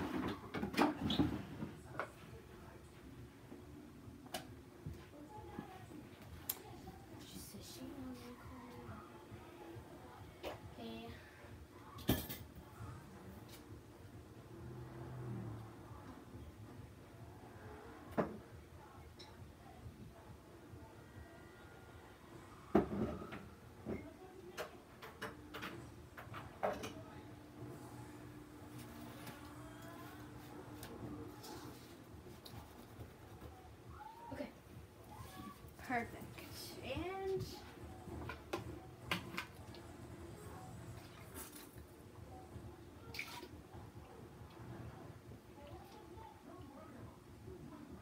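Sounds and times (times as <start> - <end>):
knocks and clunks of objects moved: 0.0 - 2.2
faint voice: 17.2 - 48.0.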